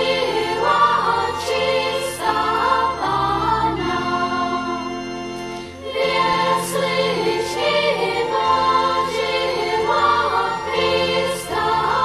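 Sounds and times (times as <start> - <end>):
group singing a carol: 0.0 - 12.0.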